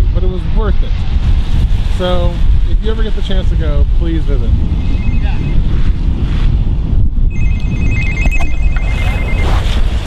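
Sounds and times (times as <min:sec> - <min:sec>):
phone two-tone trilling ringtone: 0:04.9 - 0:05.6, 0:07.3 - 0:09.7.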